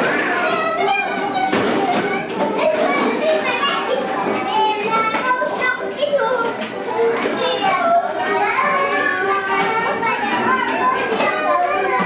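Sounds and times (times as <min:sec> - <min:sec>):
children chattering and calling out: 0:00.0 - 0:12.0.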